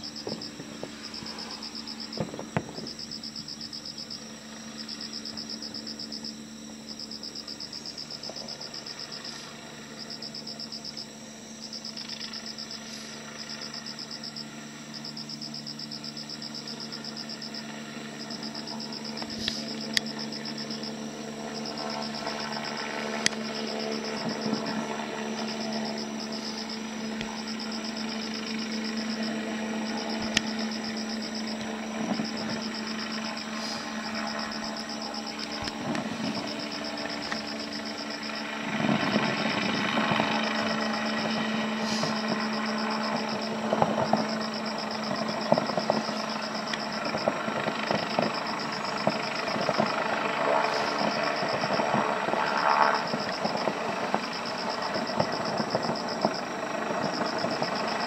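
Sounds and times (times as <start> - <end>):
insects chirping: 0.0 - 58.0
steady low hum: 0.0 - 58.0.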